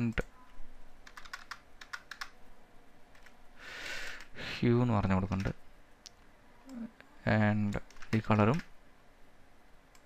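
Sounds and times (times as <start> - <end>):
person speaking: 6.6 - 8.7.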